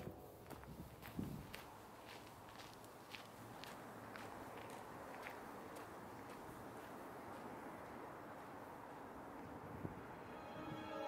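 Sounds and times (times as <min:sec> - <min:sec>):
footsteps on gravel path: 0:00.0 - 0:09.0.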